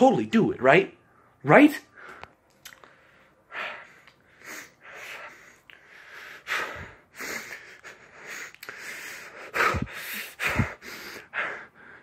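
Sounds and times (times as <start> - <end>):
man breathing: 1.0 - 12.0.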